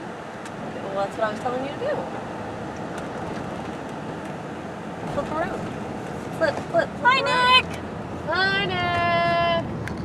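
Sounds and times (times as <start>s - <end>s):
car engine and tyre noise: 0.0s - 10.0s.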